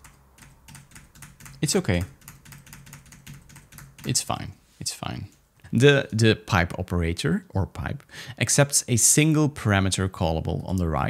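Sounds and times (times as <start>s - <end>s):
computer keyboard typing: 0.0s - 4.2s.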